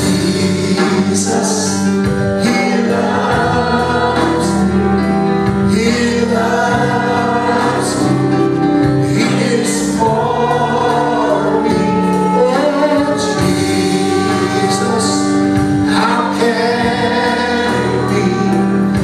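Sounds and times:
band backing: 0.0 - 19.0
choir singing worship song: 0.0 - 19.0.

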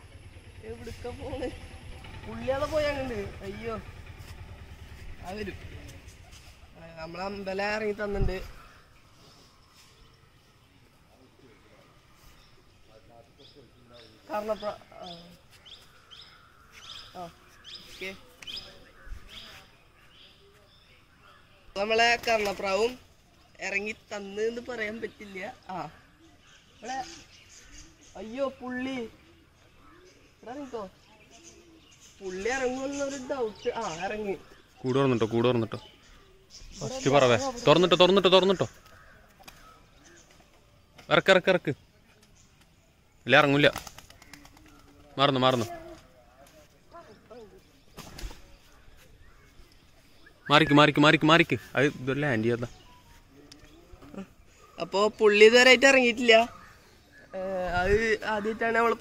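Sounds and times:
small birds chirping: 0.0 - 59.0.

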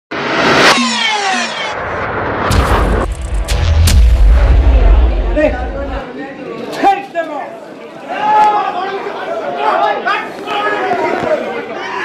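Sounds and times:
whoosh: 0.1 - 6.0
tones gliding downward: 0.2 - 5.2.

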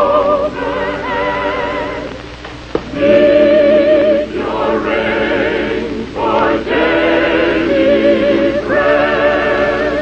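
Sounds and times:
chorus singing with vibrato: 0.0 - 10.0.

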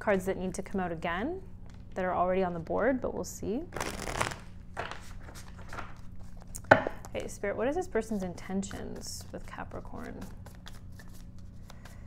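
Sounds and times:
cards being shuffled: 3.7 - 7.3, 8.8 - 12.0.

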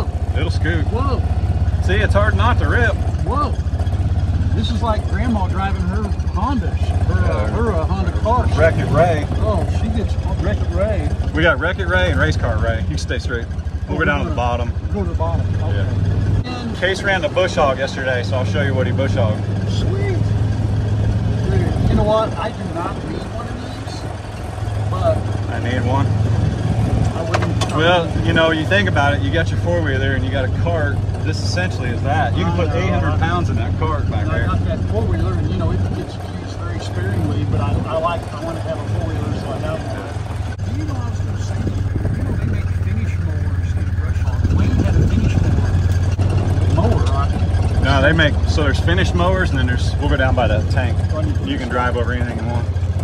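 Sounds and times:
utility vehicle engine droning: 0.0 - 53.0.

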